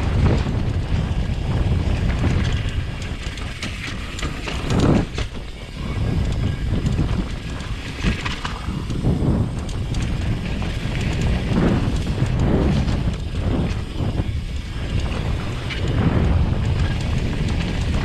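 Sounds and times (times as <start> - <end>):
bike chain rattling: 0.0 - 18.0
wind rushing on microphone: 0.0 - 18.0.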